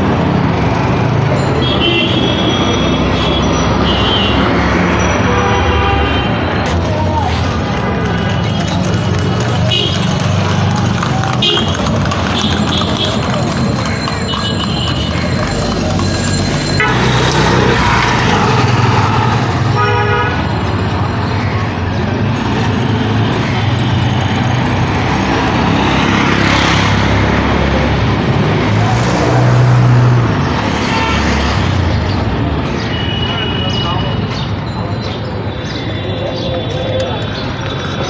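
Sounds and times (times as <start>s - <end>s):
busy street traffic: 0.0s - 38.0s
vehicle horn toot: 1.6s - 4.5s, 16.8s - 17.2s, 19.7s - 20.5s, 32.9s - 34.3s.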